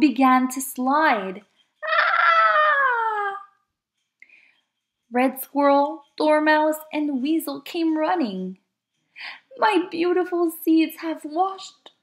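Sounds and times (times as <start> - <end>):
woman screaming: 1.8 - 3.6.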